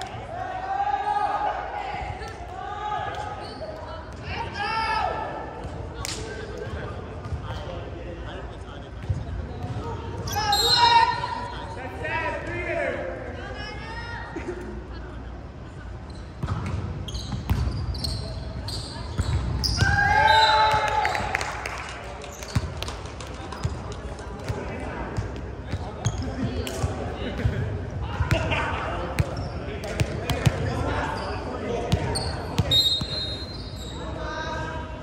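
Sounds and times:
players shouting and calling out: 0:00.0 - 0:08.4, 0:09.5 - 0:15.5, 0:17.0 - 0:21.7, 0:24.5 - 0:35.0.

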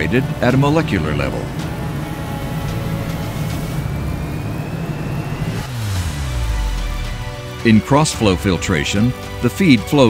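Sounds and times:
faint rising tone: 0:00.0 - 0:08.4
low drone: 0:00.0 - 0:09.4
background music: 0:00.0 - 0:10.0
falling sweep: 0:00.8 - 0:08.4
whoosh: 0:01.6 - 0:08.2.

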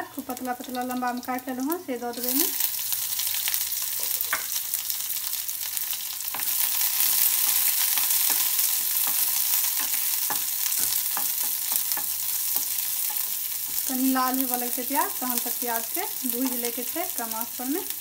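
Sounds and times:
onions sizzling in oil: 0:00.0 - 0:18.0
spatula scraping a pan: 0:06.3 - 0:13.9.

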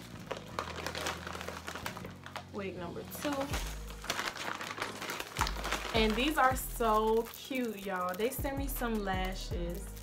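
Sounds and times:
plastic bag crinkling: 0:00.0 - 0:08.6.

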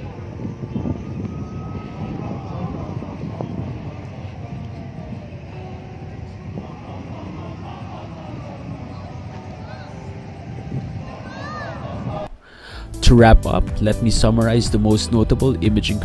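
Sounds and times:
distant voices of people: 0:00.0 - 0:12.5
low outdoor rumble: 0:00.0 - 0:16.0.

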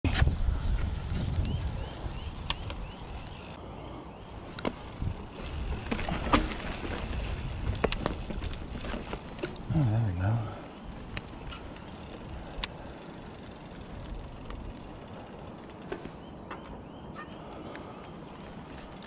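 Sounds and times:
tyres rumbling on dirt trail: 0:00.0 - 0:03.6, 0:04.2 - 0:16.6
wind on microphone: 0:00.0 - 0:03.6, 0:04.4 - 0:09.4
bike clicks and rattles: 0:00.1 - 0:03.6, 0:04.4 - 0:16.6, 0:17.6 - 0:19.0.

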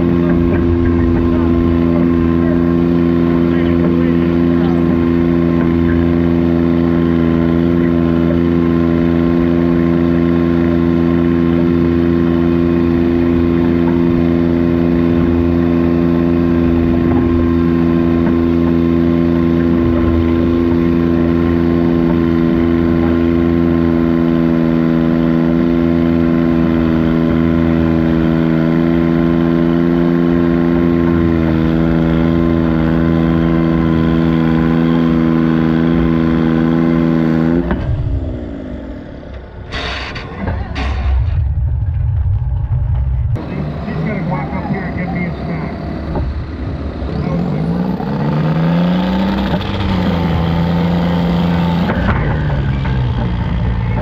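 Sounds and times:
diesel tractor engine under load: 0:00.0 - 0:54.0.

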